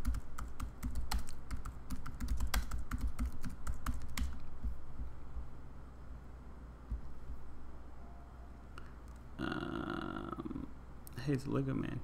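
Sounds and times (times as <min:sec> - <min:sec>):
typing on computer keyboard: 0:00.0 - 0:04.5.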